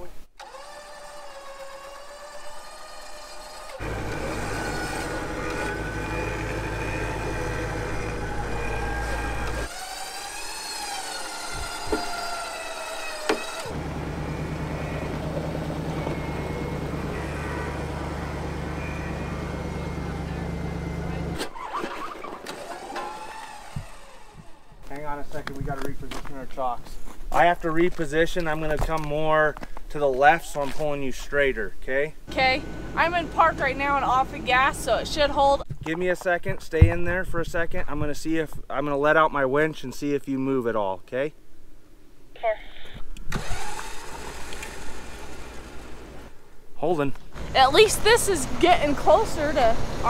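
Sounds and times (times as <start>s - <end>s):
vehicle engines under load: 0.0s - 27.4s, 32.2s - 36.9s, 43.0s - 50.0s
wavering high whine: 3.6s - 21.4s
person speaking: 46.8s - 50.0s.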